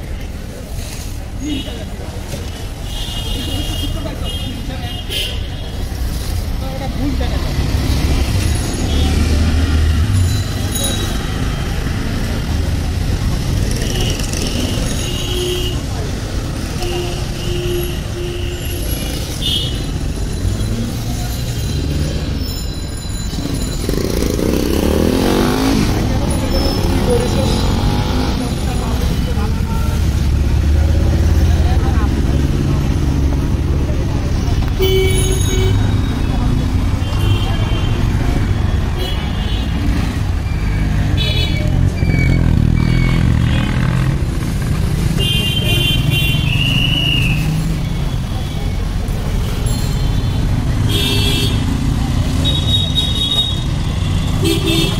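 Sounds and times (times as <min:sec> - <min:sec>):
traffic rumble: 0:00.0 - 0:54.9
vehicles passing: 0:00.0 - 0:54.9.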